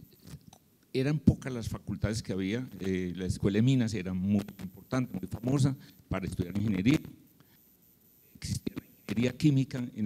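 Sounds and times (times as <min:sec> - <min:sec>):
man speaking into microphone: 0:00.9 - 0:07.2, 0:08.4 - 0:10.0.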